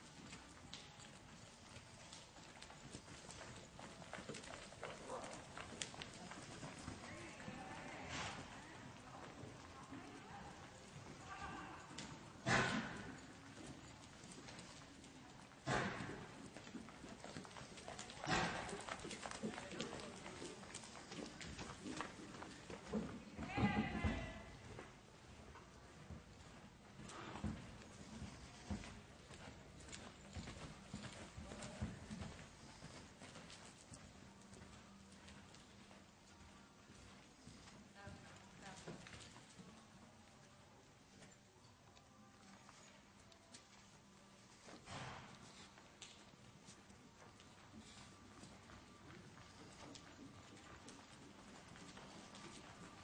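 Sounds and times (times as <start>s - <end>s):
horse hoofbeats on dirt: 0.0s - 39.9s, 42.4s - 53.0s.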